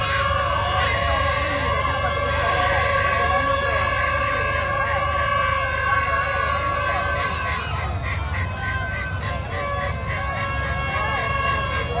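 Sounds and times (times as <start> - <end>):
many people talking: 0.0 - 12.0
wavering siren-like sounds: 0.0 - 12.0.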